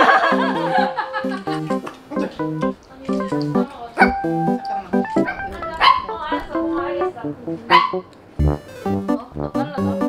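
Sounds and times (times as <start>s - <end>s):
background music: 0.0s - 10.0s
dog barking: 5.2s - 6.3s, 7.7s - 8.1s.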